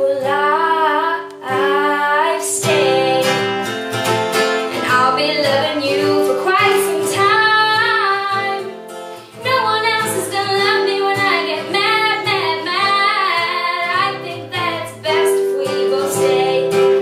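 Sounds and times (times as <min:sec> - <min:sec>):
woman singing pop song: 0:00.0 - 0:03.7, 0:04.7 - 0:17.0
acoustic guitar strumming: 0:00.0 - 0:17.0.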